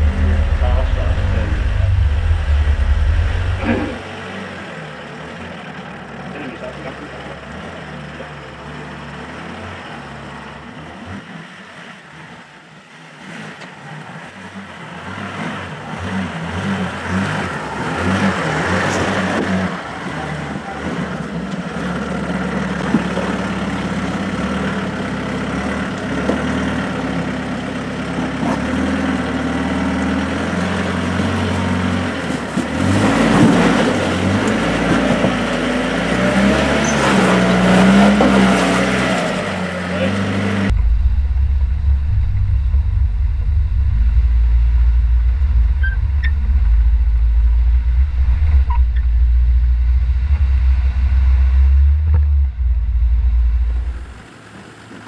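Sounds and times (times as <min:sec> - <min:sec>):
engine labouring and revving: 0:00.0 - 0:55.0.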